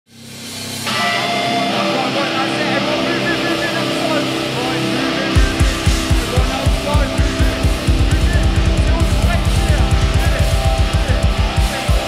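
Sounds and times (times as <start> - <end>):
amplified guitar drone: 0.2 - 12.0
crowd voices: 0.9 - 12.0.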